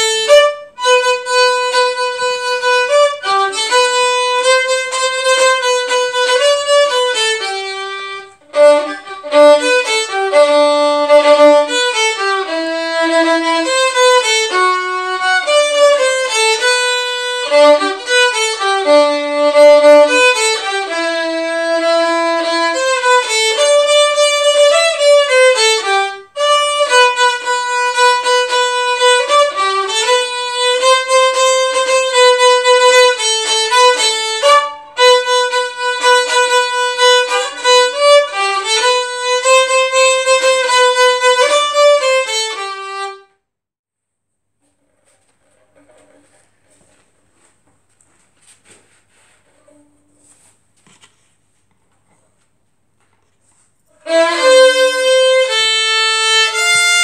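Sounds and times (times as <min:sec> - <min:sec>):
solo violin melody: 0:00.0 - 0:43.4, 0:53.9 - 0:57.0.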